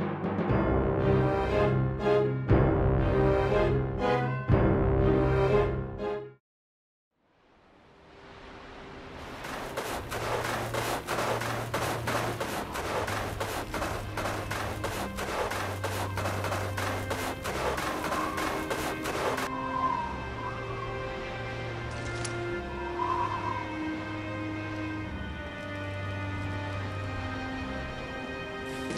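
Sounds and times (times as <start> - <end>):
soundtrack music with low tones: 0.0 - 6.4, 8.2 - 28.9.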